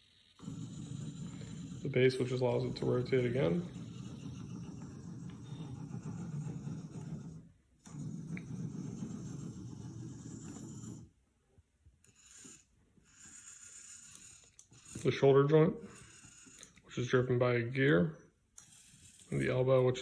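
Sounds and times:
servo motors whirring: 0:12.1 - 0:17.2.

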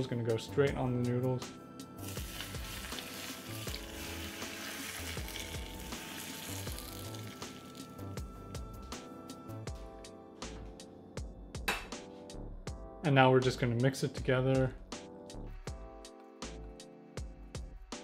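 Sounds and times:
background music: 0:00.0 - 0:18.0
hot oil sizzling: 0:02.0 - 0:08.0.

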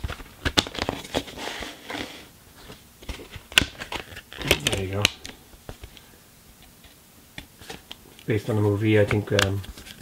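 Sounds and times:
plastic case clicks and crackles: 0:00.0 - 0:01.3, 0:03.0 - 0:06.0, 0:09.0 - 0:10.0.

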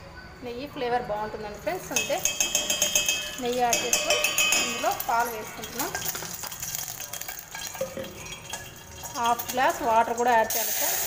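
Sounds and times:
liquid sizzling in a hot pot: 0:01.9 - 0:11.0.

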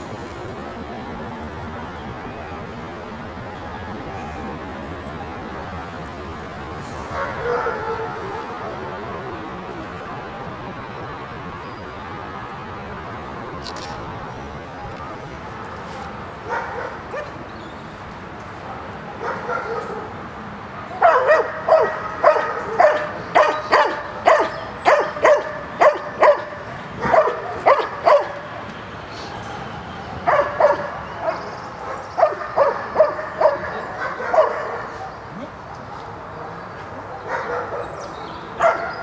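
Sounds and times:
dog yelping and barking: 0:21.0 - 0:28.4, 0:30.3 - 0:35.5, 0:38.6 - 0:39.0.

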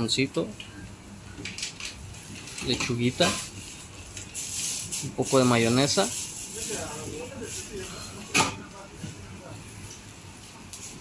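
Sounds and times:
kitchen noise: 0:00.3 - 0:11.0
faint background voices: 0:05.1 - 0:09.9.

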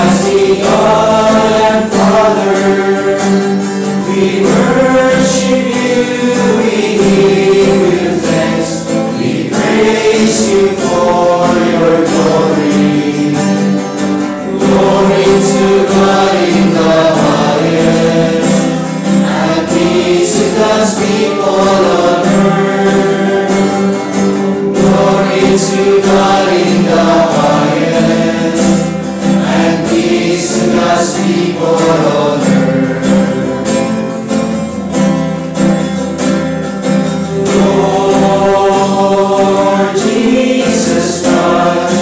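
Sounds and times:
choir singing a hymn: 0:00.0 - 0:34.9, 0:36.8 - 0:42.0.

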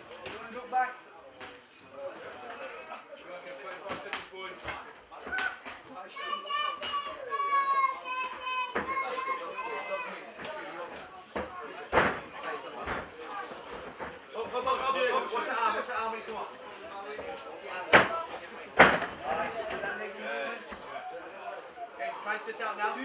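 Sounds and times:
spectators' voices: 0:00.0 - 0:23.0
sharp knocks and slaps: 0:11.4 - 0:13.2, 0:17.9 - 0:19.8.

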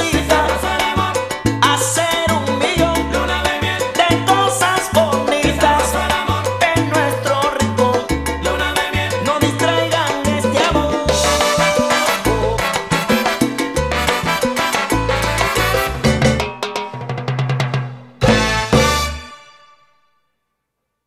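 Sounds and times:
repeating bass line: 0:00.0 - 0:16.5
salsa band playing: 0:00.0 - 0:19.8
dense percussion: 0:07.6 - 0:19.2.

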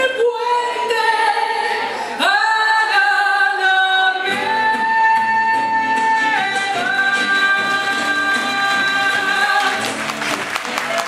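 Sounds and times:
woman singing with vibrato: 0:00.0 - 0:09.9
band playing: 0:04.3 - 0:11.0.

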